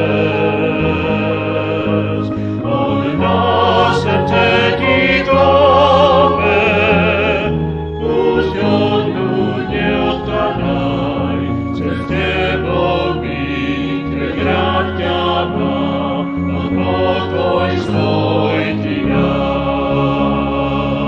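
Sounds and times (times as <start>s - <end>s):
vocal group singing: 0.0s - 21.0s.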